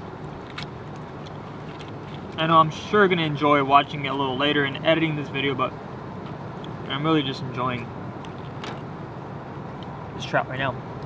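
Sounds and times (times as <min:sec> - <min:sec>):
distant traffic: 0:00.0 - 0:11.0.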